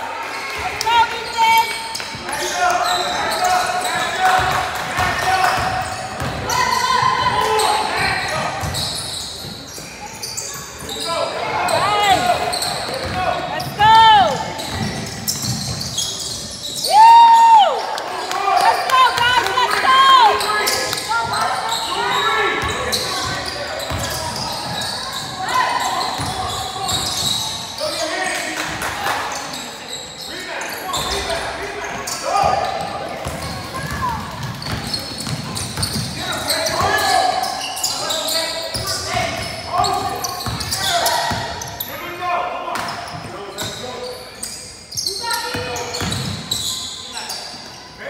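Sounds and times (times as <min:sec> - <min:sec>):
sneakers squeaking on gym floor: 0:00.4 - 0:17.2, 0:17.8 - 0:48.0
basketball bouncing on wooden floor: 0:14.6 - 0:16.0, 0:33.2 - 0:36.1.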